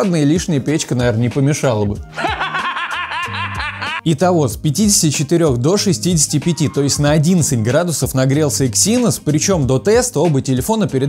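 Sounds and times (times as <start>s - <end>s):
background music with low notes: 0.0s - 11.0s.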